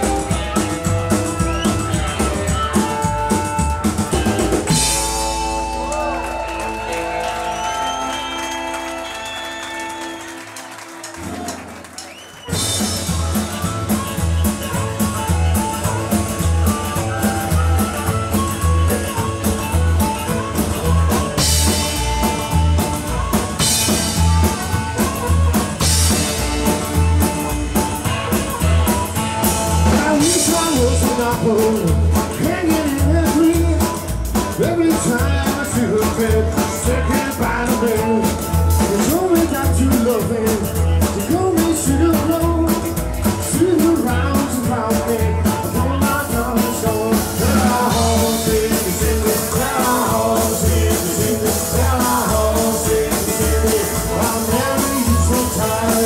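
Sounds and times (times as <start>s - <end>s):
driving drum beat: 0.0s - 56.0s
rock and roll band playing: 0.0s - 56.0s.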